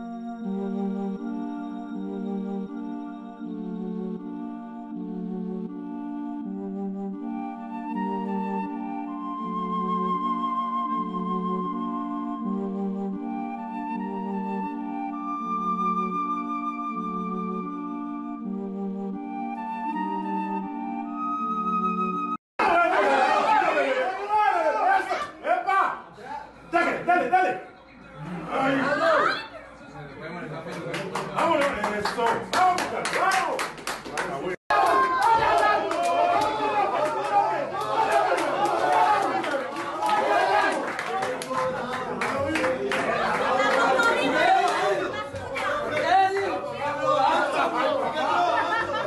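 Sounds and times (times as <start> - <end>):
music with long held notes: 0.0 - 22.4
group chatter: 34.7 - 49.0
people talking over each other: 34.7 - 49.0.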